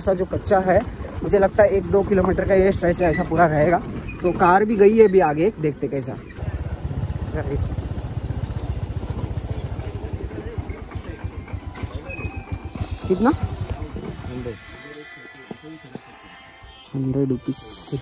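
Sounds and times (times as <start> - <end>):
scooter running on dirt track: 0.1 - 5.2, 6.4 - 14.8.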